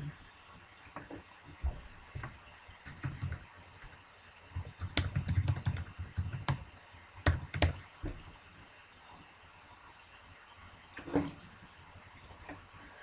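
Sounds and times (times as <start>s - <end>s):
keyboard typing: 2.2s - 4.0s, 4.6s - 7.8s.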